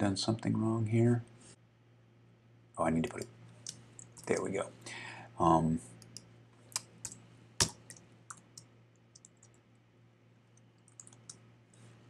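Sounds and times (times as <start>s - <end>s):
light typing taps: 6.0s - 9.6s, 10.6s - 11.4s
keyboard keystrokes: 10.9s - 11.4s.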